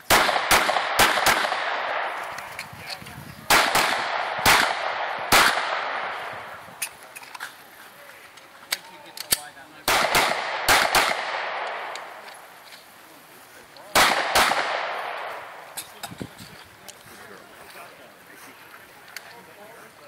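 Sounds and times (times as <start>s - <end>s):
handgun shots with echo: 9.3s - 12.1s.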